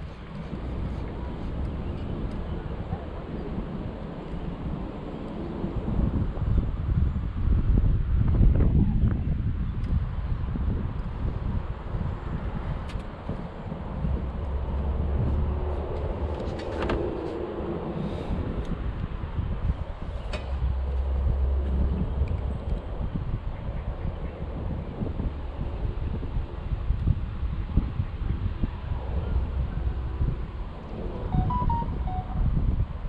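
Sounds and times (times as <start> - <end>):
wind buffeting microphone: 0.0 - 33.0.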